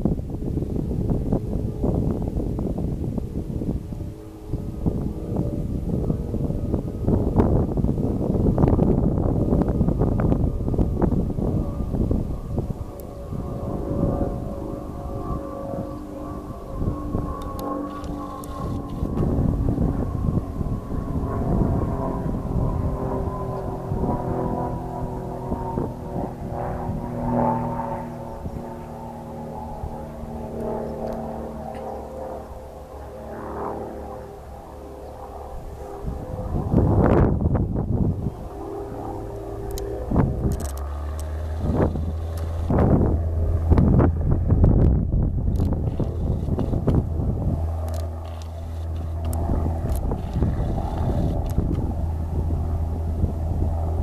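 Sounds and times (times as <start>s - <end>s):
low rumbling noise: 0.0s - 54.0s
steady engine drone: 0.0s - 54.0s.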